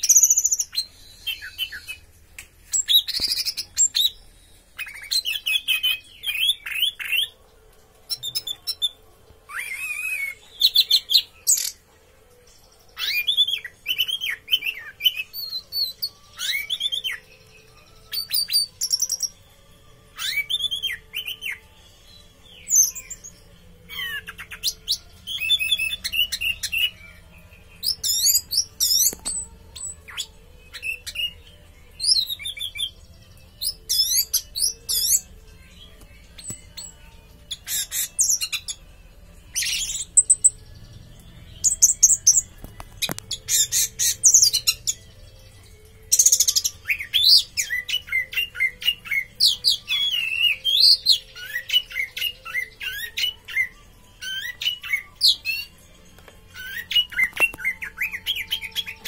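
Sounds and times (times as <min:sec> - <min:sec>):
thrush singing: 0:00.0 - 0:59.0.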